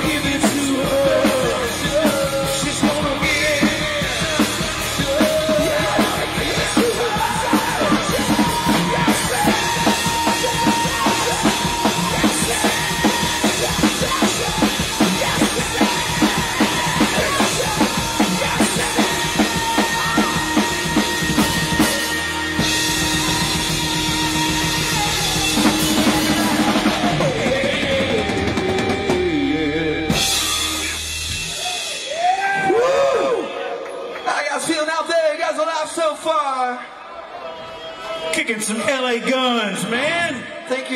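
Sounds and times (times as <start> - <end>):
shouted vocals: 0.0 - 28.4, 31.5 - 34.7
distorted electric guitars: 0.0 - 32.7
fast drum beat: 0.0 - 32.9
bass guitar: 0.0 - 33.4.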